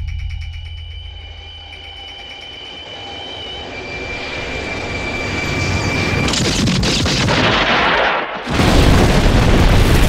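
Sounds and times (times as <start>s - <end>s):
large explosion rumbling: 7.2s - 10.0s.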